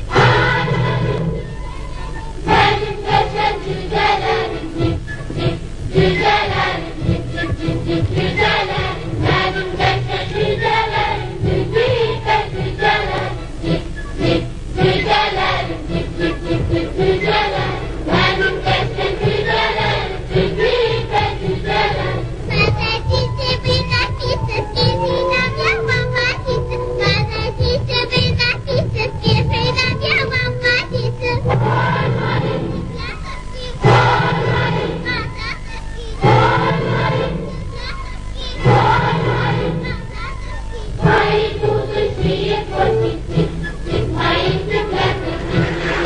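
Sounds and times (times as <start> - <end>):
choir singing: 0.0 - 46.0
instrumental accompaniment: 0.0 - 46.0.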